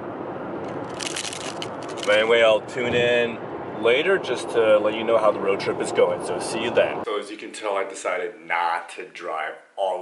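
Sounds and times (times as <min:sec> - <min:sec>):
tyre and road noise in car: 0:00.0 - 0:03.8.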